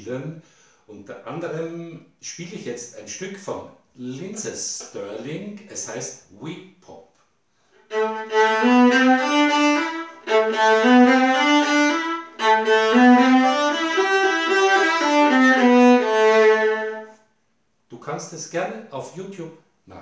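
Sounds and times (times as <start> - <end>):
solo violin playing pop tune: 7.9 - 17.2.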